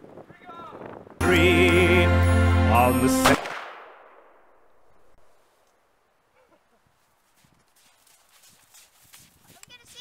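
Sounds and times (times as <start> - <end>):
footsteps crunching in snow: 6.8 - 10.0
child calling out: 9.6 - 10.0.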